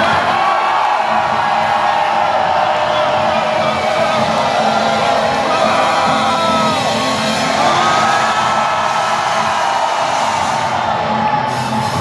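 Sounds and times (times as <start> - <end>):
crowd noise and shouting: 0.0 - 12.0.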